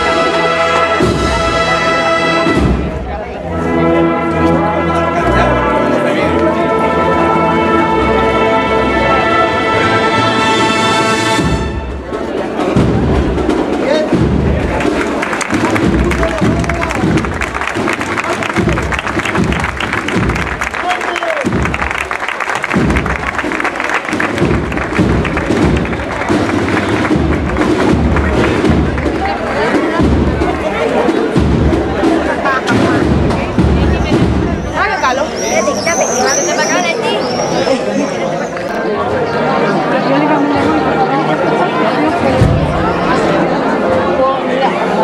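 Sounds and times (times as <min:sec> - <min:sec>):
brass chord: 0:00.0 - 0:13.1
crowd voices: 0:00.0 - 0:45.0
drums clattering: 0:00.9 - 0:03.1, 0:11.2 - 0:35.6, 0:42.1 - 0:43.4.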